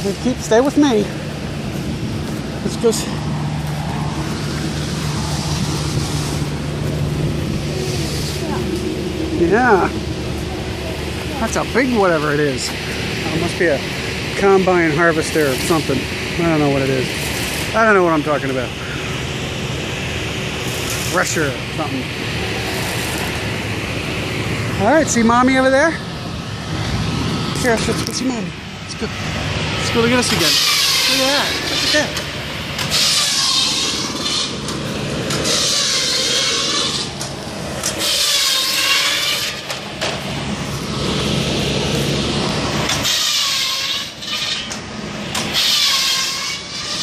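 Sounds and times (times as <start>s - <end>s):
tractor engine running under load: 0.0s - 43.1s
threshing machine noise: 0.0s - 47.0s.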